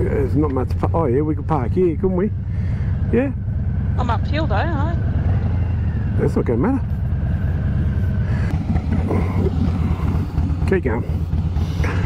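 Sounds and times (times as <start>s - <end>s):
motorcycle engine running slowly: 0.0s - 12.0s.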